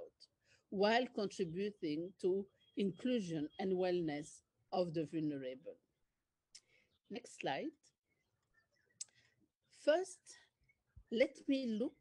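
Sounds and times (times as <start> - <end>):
woman's voice: 0.0 - 5.8, 7.1 - 7.9, 9.8 - 10.5, 11.1 - 12.0.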